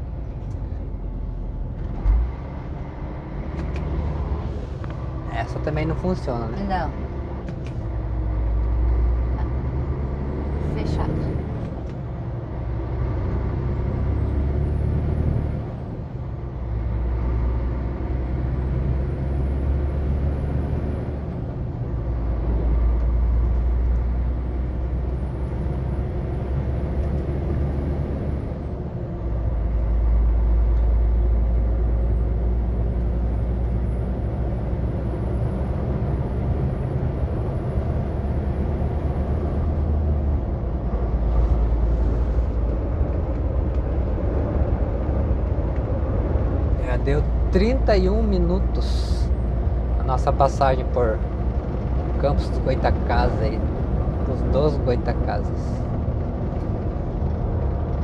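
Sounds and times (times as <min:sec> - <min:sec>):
truck diesel engine rumble: 0:00.0 - 0:58.0.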